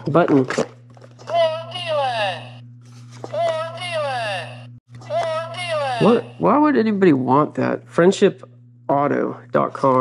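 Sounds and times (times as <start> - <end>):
electrical hum: 0.0 - 10.0
recorded voice from button speaker: 1.3 - 2.6, 3.3 - 6.7.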